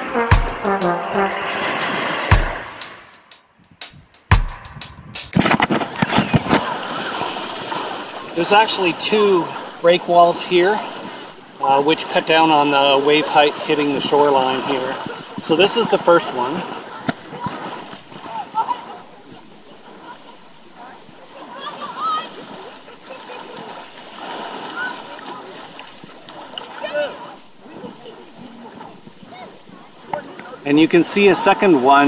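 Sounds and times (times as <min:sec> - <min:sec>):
seawater lapping and sloshing: 0:00.8 - 0:03.2, 0:05.3 - 0:32.0
rush of water: 0:00.8 - 0:03.5, 0:05.3 - 0:32.0
water knocking against camera: 0:01.8 - 0:02.8, 0:03.8 - 0:06.7, 0:17.0 - 0:18.1, 0:30.1 - 0:30.6
sharp knock: 0:02.3 - 0:05.7
wind noise: 0:03.5 - 0:07.8
faint distant voices: 0:06.2 - 0:31.8.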